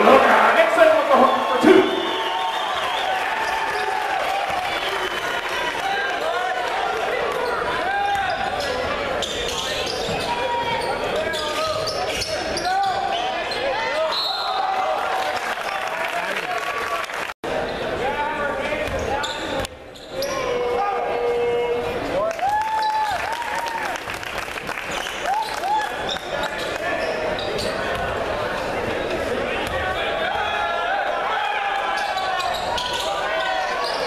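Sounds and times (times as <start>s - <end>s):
crowd chatter: 0.0s - 22.8s, 24.6s - 34.0s
sneakers squeaking on hardwood: 7.4s - 14.3s.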